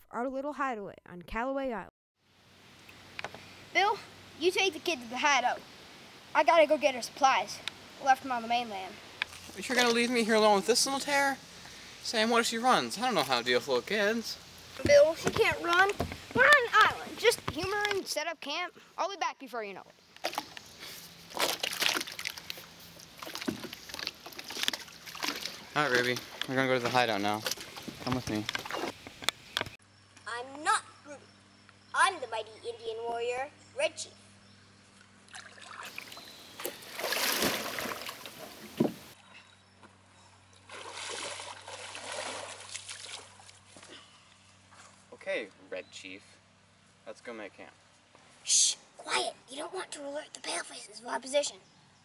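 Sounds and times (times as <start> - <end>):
water sloshing and splashing: 20.2 - 29.0, 35.2 - 39.2, 40.6 - 43.9.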